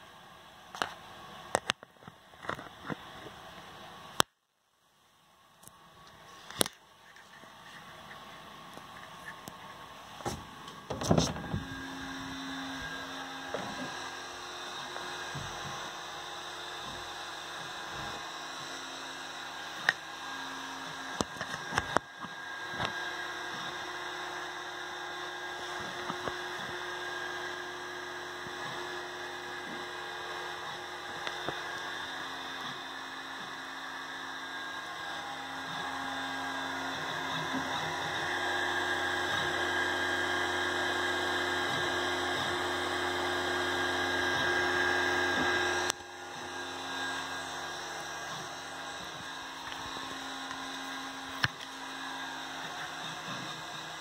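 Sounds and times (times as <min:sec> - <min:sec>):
stepper motors whining: 0:07.8 - 0:54.0.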